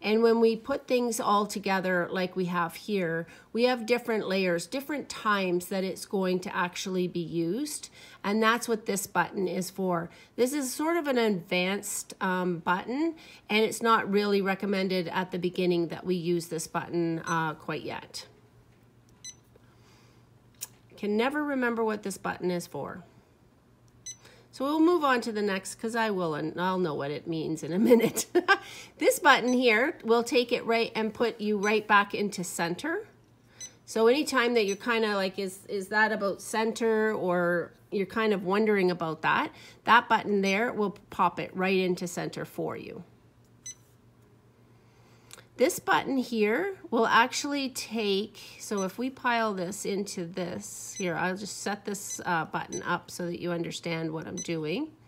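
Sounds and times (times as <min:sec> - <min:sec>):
faint machine beep: 0:19.2 - 0:19.5, 0:24.0 - 0:24.4, 0:29.4 - 0:29.8, 0:31.6 - 0:31.9, 0:33.6 - 0:33.8, 0:34.6 - 0:34.9, 0:43.6 - 0:43.9, 0:48.7 - 0:49.0, 0:52.0 - 0:52.9, 0:54.3 - 0:54.6.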